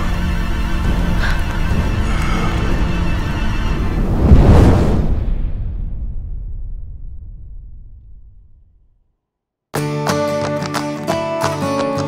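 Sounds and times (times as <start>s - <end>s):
low rumble: 0.0s - 9.1s
monster cry: 1.2s - 3.5s.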